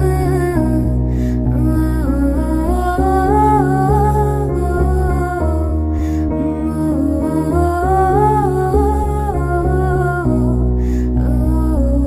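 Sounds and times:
instrumental track of sustained chords: 0:00.0 - 0:12.0
woman humming a slow melody: 0:00.0 - 0:12.0.

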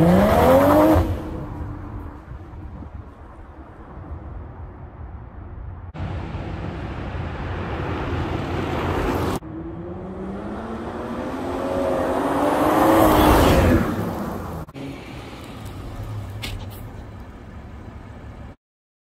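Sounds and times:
road noise: 0:00.0 - 0:18.6.

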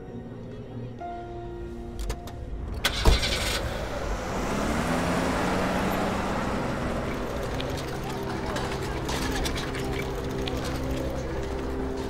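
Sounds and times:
car engine pulling away: 0:02.3 - 0:12.0.

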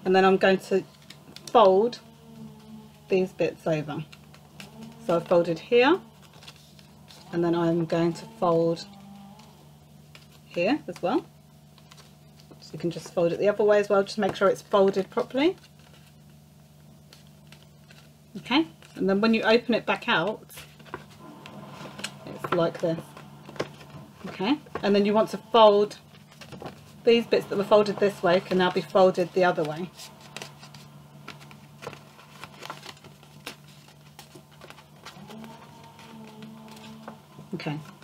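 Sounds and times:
steady low hum: 0:00.0 - 0:38.0
card being folded and creased: 0:03.9 - 0:10.5, 0:11.7 - 0:13.1, 0:14.8 - 0:18.1, 0:20.6 - 0:38.0.

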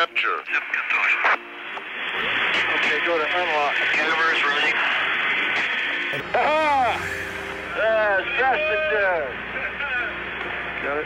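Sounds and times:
radio static hiss: 0:00.0 - 0:06.2.

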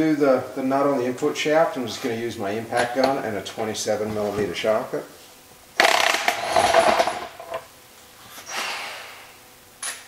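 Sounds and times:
impact wrench hammering: 0:05.8 - 0:07.6.

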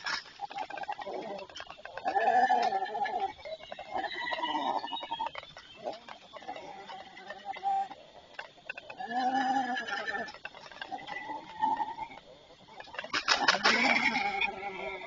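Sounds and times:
rustling wings and twigs: 0:00.0 - 0:15.0.

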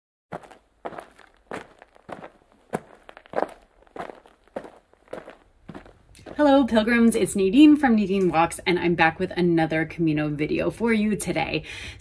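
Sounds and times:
footsteps walking on a path: 0:00.3 - 0:07.2.

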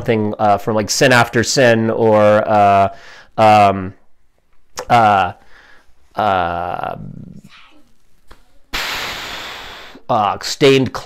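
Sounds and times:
person exhaling breathily: 0:08.8 - 0:10.1.

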